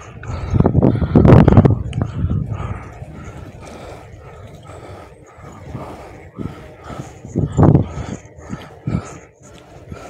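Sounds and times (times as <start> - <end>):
low rumble: 0.0 - 9.2.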